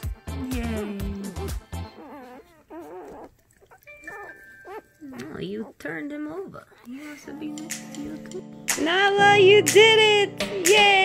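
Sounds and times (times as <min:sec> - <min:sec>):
puppies squealing and whimpering: 0:01.6 - 0:07.2.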